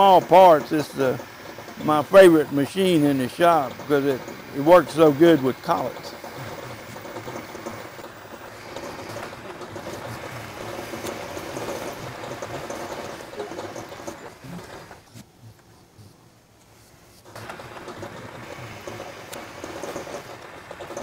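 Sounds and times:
metal lathe cutting steel bar: 0.0s - 15.1s, 17.3s - 21.0s.

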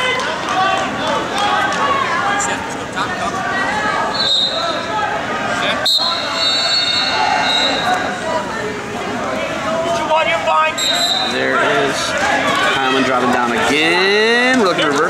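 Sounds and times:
people calling out: 0.0s - 15.0s.

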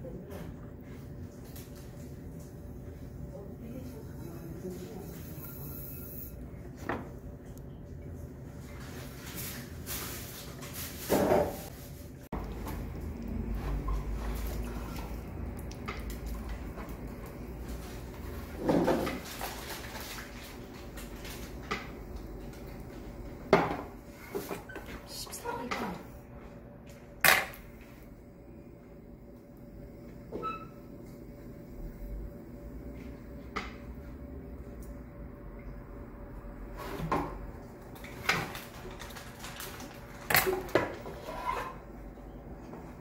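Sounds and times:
potter's wheel humming: 2.1s - 8.6s.

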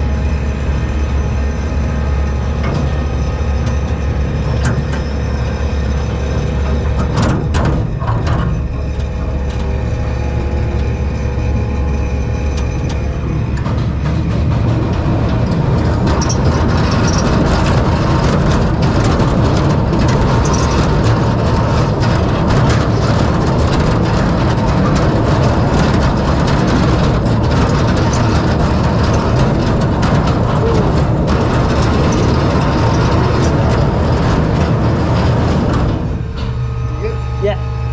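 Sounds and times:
roller coaster rumble on track: 0.0s - 37.9s
wheels clattering clicks: 11.8s - 36.8s.

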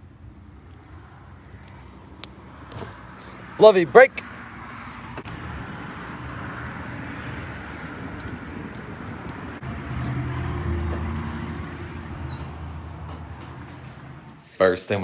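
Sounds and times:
vehicle engine rumbling: 0.0s - 14.5s
background traffic noise: 0.0s - 15.0s.

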